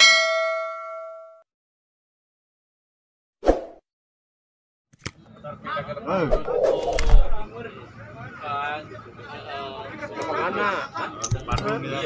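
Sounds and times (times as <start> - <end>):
bright bell ding: 0.0 - 1.4.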